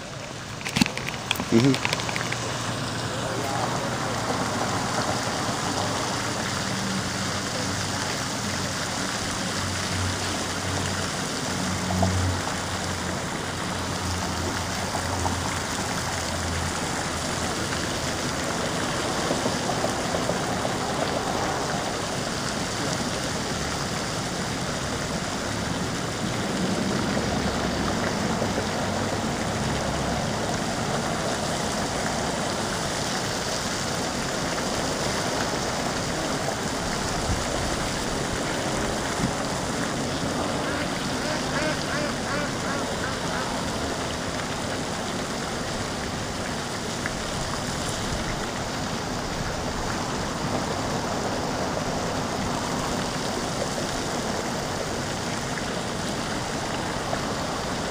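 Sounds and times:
fountain water splashing: 0:00.0 - 0:57.9.

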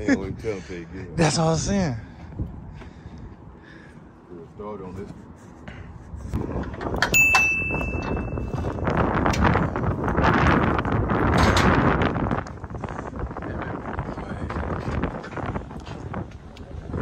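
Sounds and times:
wind buffeting microphone: 0:00.0 - 0:17.0
metallic clang ringing: 0:07.0 - 0:08.6.

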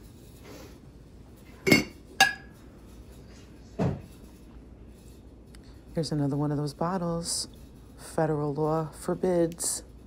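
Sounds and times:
ceramic and glassware knocking: 0:01.7 - 0:02.5.

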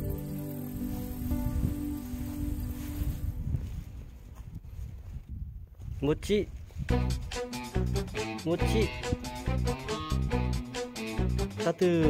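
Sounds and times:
background music: 0:00.0 - 0:03.4, 0:06.9 - 0:12.0
footsteps on grass and stones: 0:00.9 - 0:06.9.

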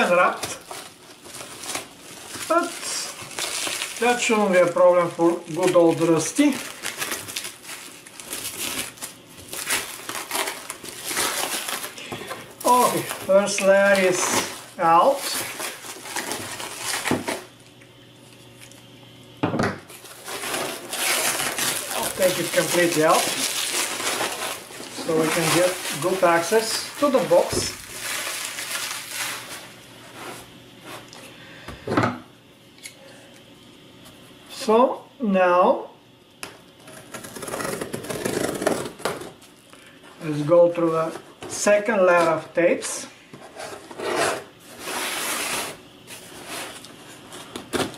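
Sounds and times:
loud plastic crackle: 0:00.0 - 0:17.5, 0:19.9 - 0:29.8
plastic wrap crinkling: 0:00.0 - 0:18.8, 0:19.9 - 0:30.5.

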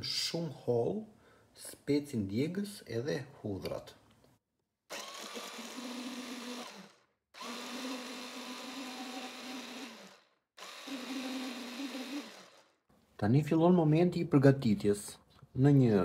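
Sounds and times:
electric food chopper whirring: 0:04.9 - 0:12.8.

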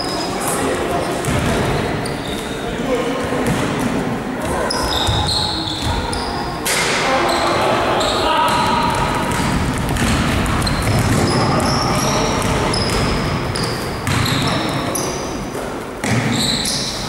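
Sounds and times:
sneaker squeaks: 0:00.0 - 0:02.8, 0:04.4 - 0:17.0
basketball bouncing on hardwood: 0:08.6 - 0:11.8.

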